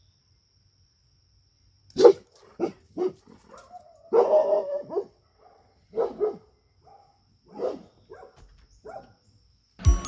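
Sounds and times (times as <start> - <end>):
large dog barking: 1.9 - 9.2
music: 9.8 - 10.0.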